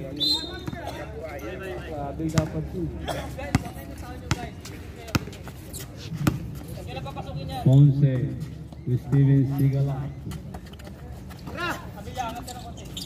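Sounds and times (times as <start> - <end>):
players' voices calling: 0.0 - 13.0
basketball bouncing on concrete: 2.3 - 2.6, 3.4 - 5.5, 6.2 - 6.6.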